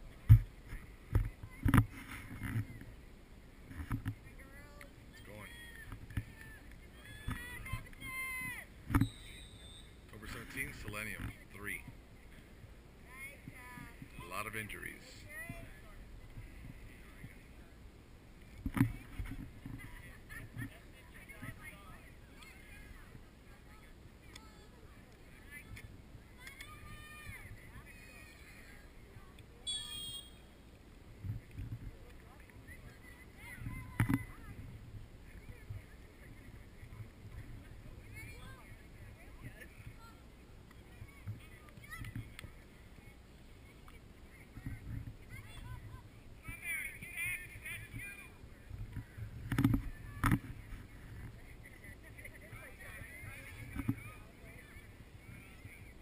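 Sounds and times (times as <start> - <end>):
distant voices of players and spectators: 0.0 - 56.0
long call dropping in pitch: 29.6 - 30.5.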